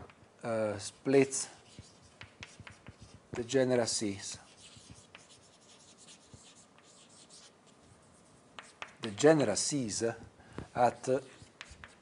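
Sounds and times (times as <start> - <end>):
writing scratching on a board: 1.6 - 3.3, 4.5 - 9.1, 10.7 - 12.0.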